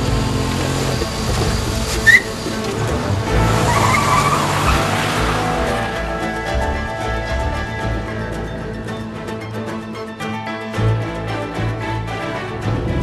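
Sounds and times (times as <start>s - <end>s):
car engine revving low: 0.0s - 8.2s
tyres squealing: 0.1s - 6.4s.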